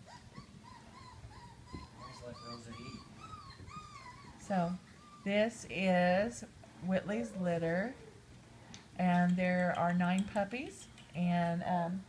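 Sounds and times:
puppies whimpering: 0.0s - 5.6s.

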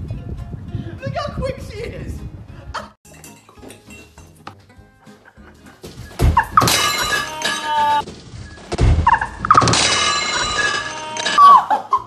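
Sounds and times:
person falling onto wooden floor: 5.7s - 9.1s
cups smashing: 6.2s - 8.1s, 9.4s - 11.7s.

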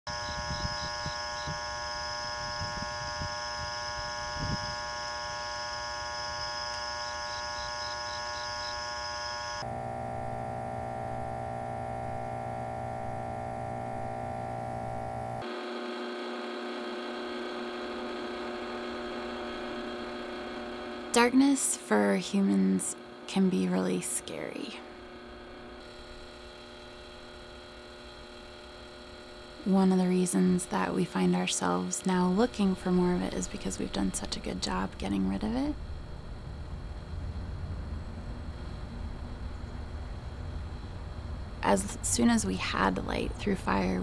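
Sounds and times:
electrical hum of street lights: 0.1s - 16.3s, 22.9s - 44.0s.

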